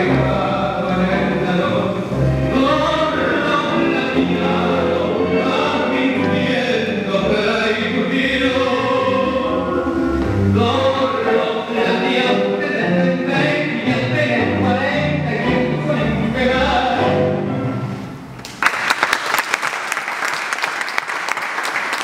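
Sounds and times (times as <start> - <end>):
person singing: 0.0 - 17.4
tango music: 0.0 - 18.5.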